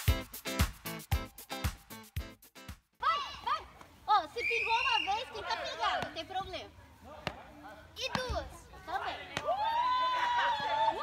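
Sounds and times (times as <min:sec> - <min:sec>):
music with steady beat: 0:00.0 - 0:02.9
people calling out and shouting: 0:03.0 - 0:11.0
paddles hitting ball: 0:05.8 - 0:06.5, 0:07.1 - 0:09.6.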